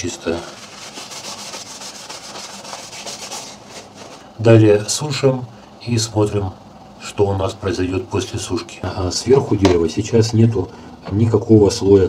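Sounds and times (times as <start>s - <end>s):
paper napkin rubbing on wood: 0.0s - 4.3s.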